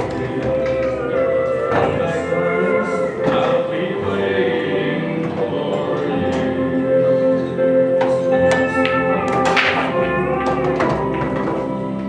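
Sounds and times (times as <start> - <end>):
pool balls clicking: 0.0 - 6.8, 7.9 - 12.0
background music: 0.0 - 12.0
cue striking ball: 8.0 - 12.0.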